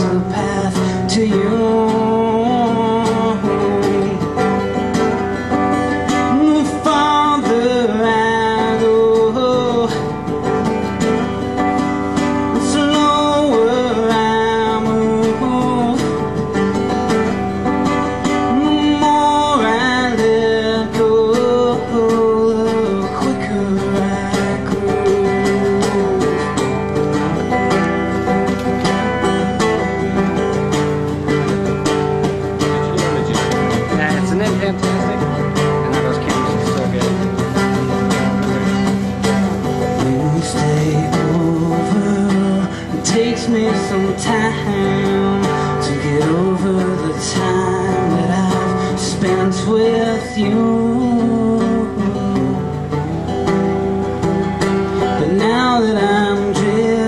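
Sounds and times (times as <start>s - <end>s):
acoustic guitars playing: 0.0s - 57.0s.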